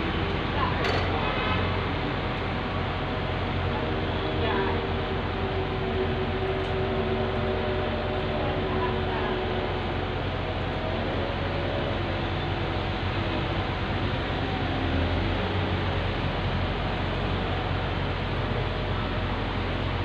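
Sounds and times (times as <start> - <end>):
concrete pump engine hum: 0.0 - 20.0.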